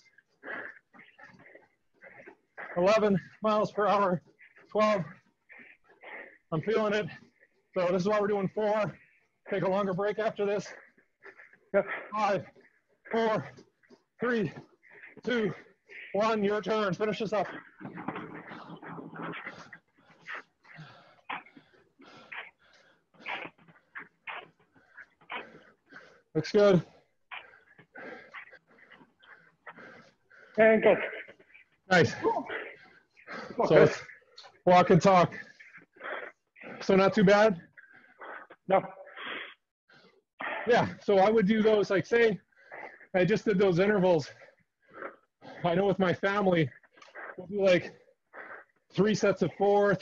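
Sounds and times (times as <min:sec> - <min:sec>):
man panting: 0:00.0 - 0:41.1, 0:42.4 - 0:50.0
runner breathing hard: 0:00.0 - 0:50.0.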